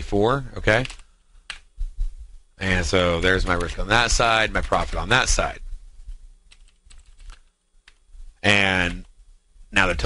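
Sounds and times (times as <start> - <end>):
keyboard typing clicks: 0.7 - 1.7, 6.5 - 8.0.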